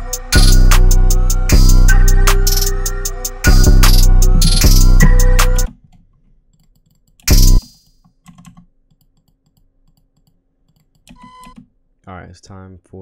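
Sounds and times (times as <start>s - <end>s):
keyboard and mouse clicking: 5.9s - 11.7s.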